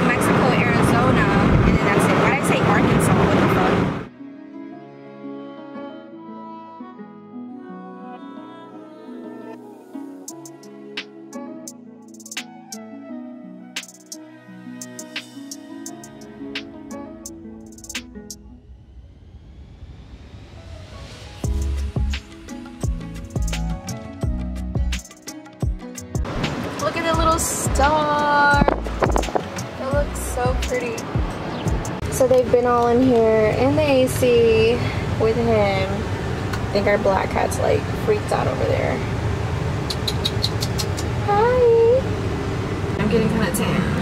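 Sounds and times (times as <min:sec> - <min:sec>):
car road noise at highway speed: 0:00.0 - 0:04.1, 0:26.2 - 0:44.0.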